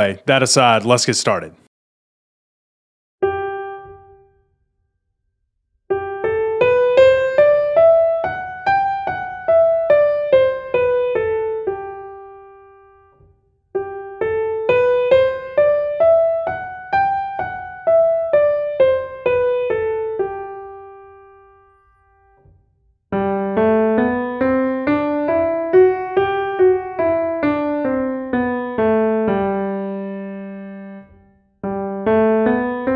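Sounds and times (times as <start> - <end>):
digital piano playing a scale: 3.2 - 4.5, 5.9 - 22.4, 23.1 - 32.9.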